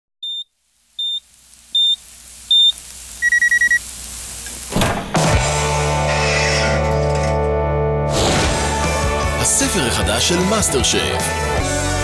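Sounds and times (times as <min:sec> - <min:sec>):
digital kitchen timer beeping: 0:00.2 - 0:03.9.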